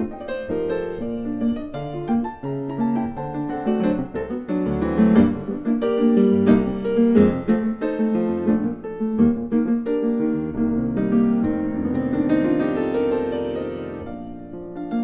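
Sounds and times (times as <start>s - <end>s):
solo classical piano: 0.0s - 15.0s.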